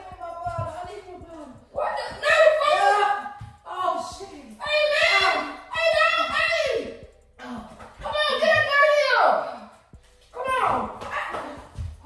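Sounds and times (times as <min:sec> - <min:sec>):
people scuffling: 0:09.6 - 0:12.0.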